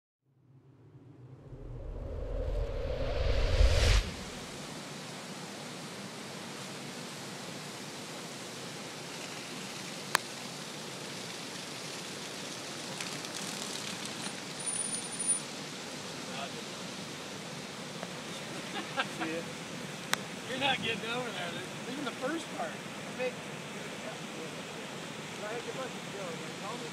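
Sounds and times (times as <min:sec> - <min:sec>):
floodwater rushing: 0:06.0 - 0:26.9.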